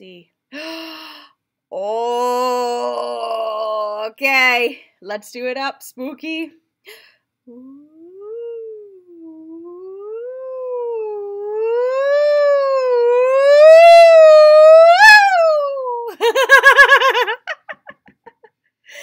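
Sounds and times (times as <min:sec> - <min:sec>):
woman singing sliding ooh: 0:01.7 - 0:04.0, 0:07.5 - 0:16.3.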